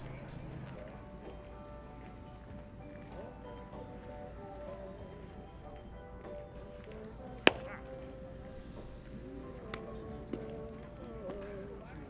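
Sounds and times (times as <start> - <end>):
sharp crack of baseball impact: 7.5 - 8.0.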